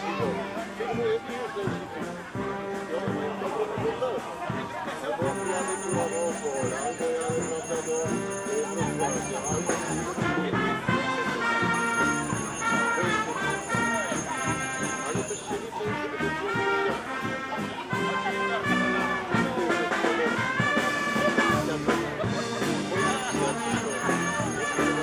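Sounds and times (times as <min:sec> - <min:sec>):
brass band playing: 0:02.1 - 0:03.3, 0:08.0 - 0:25.0
steady drum beat: 0:04.5 - 0:15.7.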